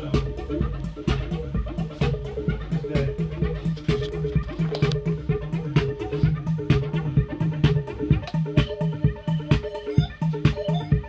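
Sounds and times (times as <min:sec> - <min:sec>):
drum machine beat: 0:00.0 - 0:11.0
repeating synth bassline: 0:00.0 - 0:11.0.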